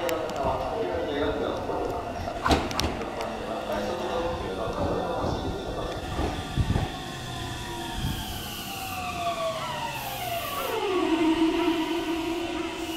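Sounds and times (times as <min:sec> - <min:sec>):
electric train inverter whine: 0:00.0 - 0:12.9
low thuds from train wheels: 0:02.3 - 0:03.3, 0:04.3 - 0:08.6.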